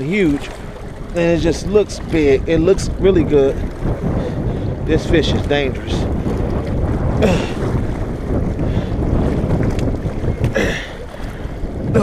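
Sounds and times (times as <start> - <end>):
waves washing against rocks: 0.0 - 12.0
wind buffeting microphone: 0.0 - 12.0.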